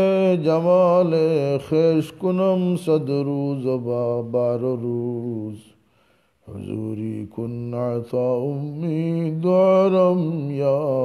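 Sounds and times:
man singing unaccompanied: 0.0s - 5.8s, 6.4s - 11.0s.

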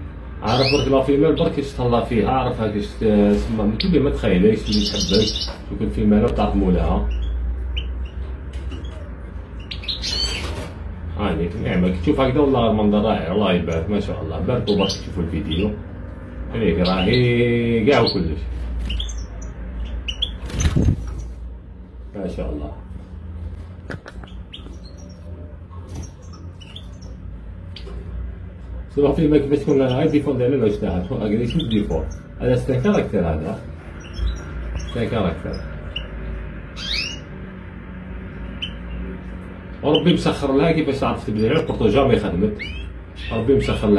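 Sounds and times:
finches chirping: 0.0s - 21.4s, 24.1s - 43.9s
low steady hum: 0.0s - 43.9s.

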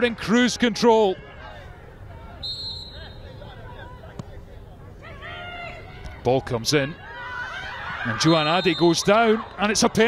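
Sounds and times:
faint players' calls: 0.0s - 10.0s
open-air ambience: 0.0s - 10.0s
referee's whistle blast: 2.4s - 3.2s, 8.2s - 9.6s.

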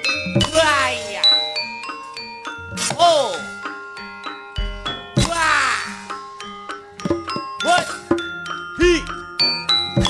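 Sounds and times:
gamelan metallophones and gongs: 0.0s - 10.0s.

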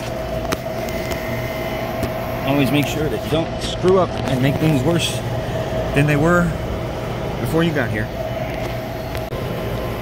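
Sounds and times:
refrigeration unit humming: 0.0s - 10.0s
faint thin whine: 0.1s - 10.0s.

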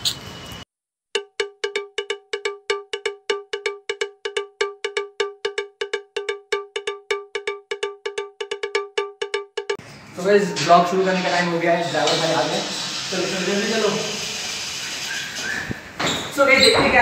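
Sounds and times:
fast bell-like percussion notes: 1.2s - 9.8s.

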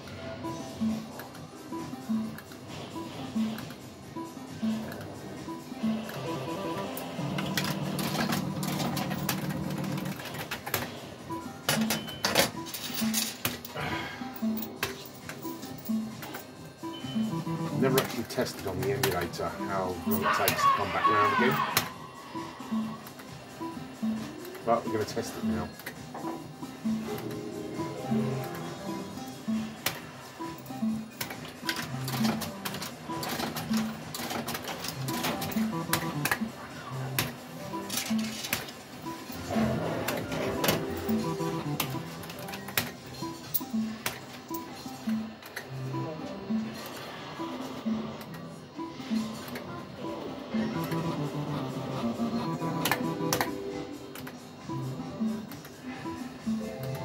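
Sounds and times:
repeating electronic tune: 16.9s - 18.0s, 41.0s - 42.1s, 50.6s - 53.7s.

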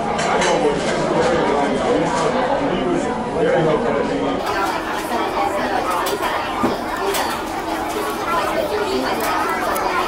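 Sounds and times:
babble of voices: 0.0s - 10.0s.

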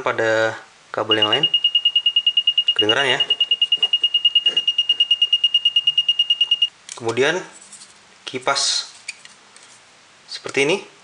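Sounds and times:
continuity tester buzzer beeping: 1.1s - 6.7s.

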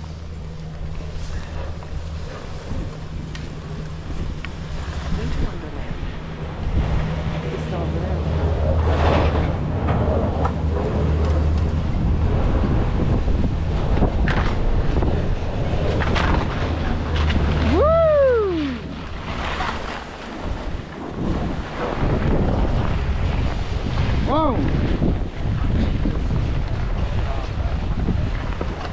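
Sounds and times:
skis scraping over snow: 0.0s - 17.9s, 18.8s - 28.9s
lift machinery hum: 0.0s - 23.8s
wind buffeting microphone: 0.0s - 28.9s.

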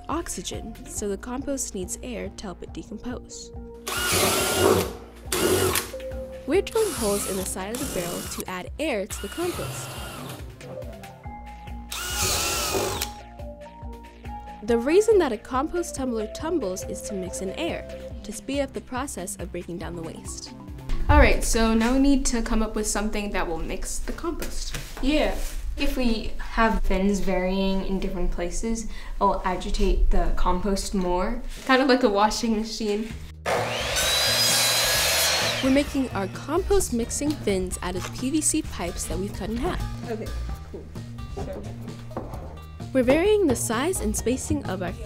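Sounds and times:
miter saw cutting pipe: 3.9s - 5.9s, 6.7s - 8.4s, 9.2s - 10.4s, 11.9s - 13.2s, 33.5s - 36.7s
power drill boring into plastic: 3.9s - 5.9s, 6.8s - 8.4s, 9.2s - 10.4s, 11.9s - 13.2s, 33.5s - 35.8s.

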